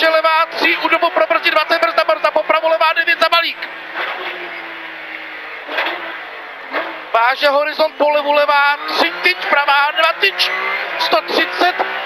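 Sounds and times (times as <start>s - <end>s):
car engine from inside cabin: 0.0s - 12.0s.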